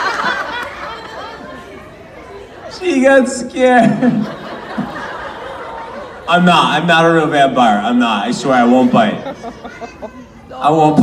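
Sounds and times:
indistinct talk echoing: 0.0 - 11.0.

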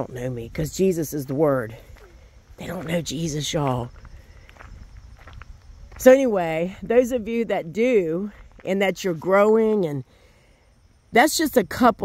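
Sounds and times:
faint footsteps: 0.0 - 10.1.

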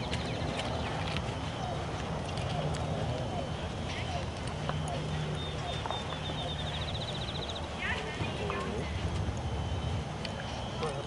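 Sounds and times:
horse hooves walking on dirt: 0.0 - 11.0
steady low rumble: 0.0 - 11.0.

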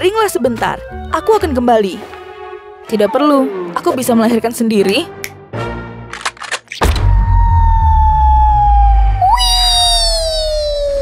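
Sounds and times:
whistle sliding down in pitch: 7.2 - 11.0
bright swooping whistle: 7.3 - 11.0.

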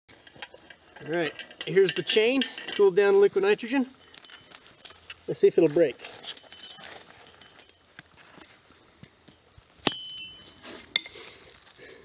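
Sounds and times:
steel chain clinking on anvil: 0.3 - 8.0, 9.3 - 11.1.

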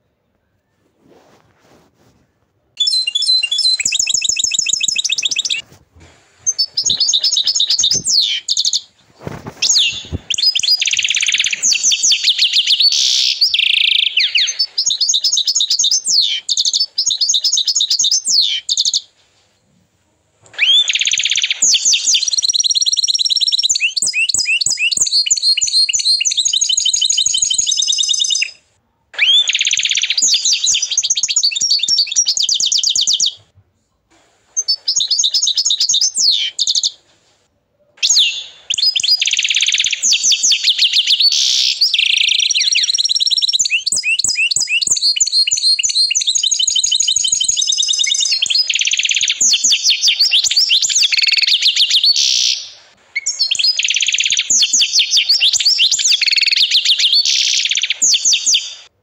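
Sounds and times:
canary singing trills: 2.8 - 5.6, 6.4 - 19.1, 20.5 - 33.4, 34.6 - 37.0, 38.0 - 58.9.

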